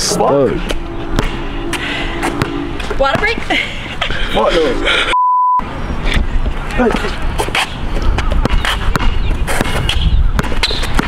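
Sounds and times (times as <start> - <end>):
basketball bouncing on hard court: 8.2 - 11.0.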